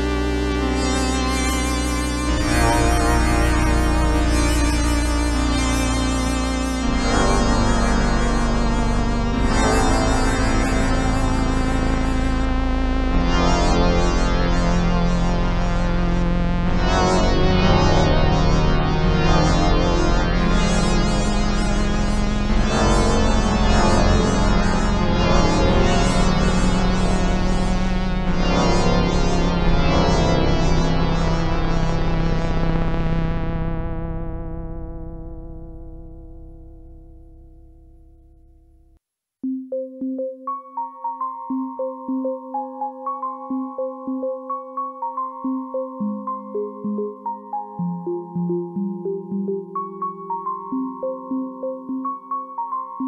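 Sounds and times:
held synth bass note: 0:00.0 - 0:39.0
synthesizer chords: 0:00.0 - 0:53.0.

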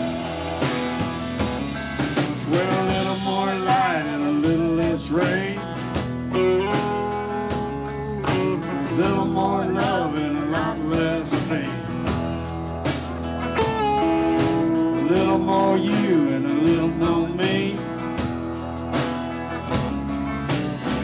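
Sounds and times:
electric guitar lead bending pitch: 0:00.0 - 0:21.0
live rock band playing: 0:00.0 - 0:21.0.

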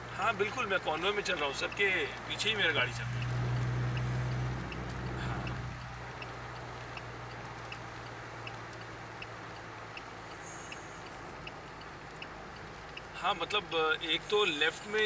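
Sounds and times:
car engine and road hum: 0:00.0 - 0:15.0
indicator relay ticking: 0:01.0 - 0:14.3.

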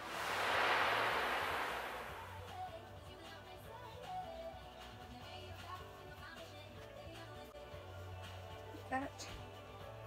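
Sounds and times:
quiet background music: 0:02.1 - 0:10.0.

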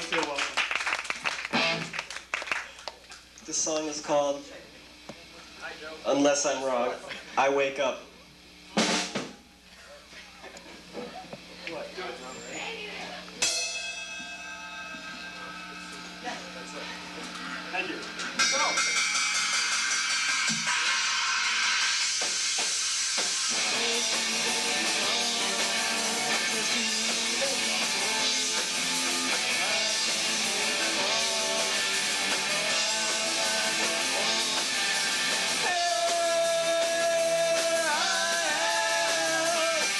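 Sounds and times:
live punk rock band: 0:01.1 - 0:02.3, 0:18.1 - 0:39.9
sharp drum hit: 0:08.8 - 0:09.4
ringing electric guitar chord: 0:12.3 - 0:20.8, 0:23.3 - 0:39.9.

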